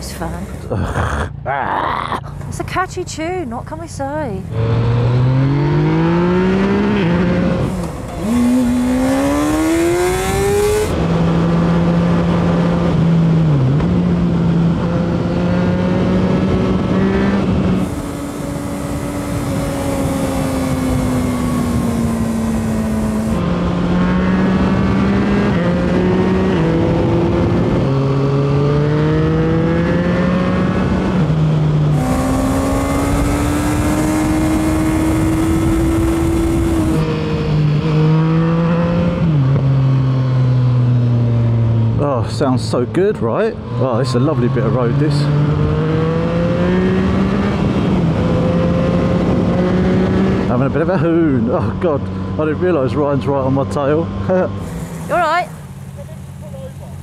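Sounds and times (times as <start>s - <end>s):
motorcycle engine accelerating: 0.0s - 57.0s.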